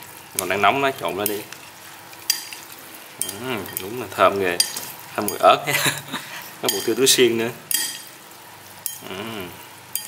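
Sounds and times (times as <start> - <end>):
person humming: 3.3 - 3.7, 9.0 - 9.6.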